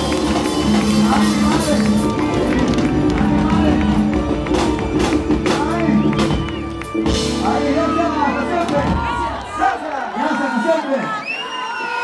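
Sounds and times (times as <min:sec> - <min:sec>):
live dance band music: 0:00.0 - 0:11.1.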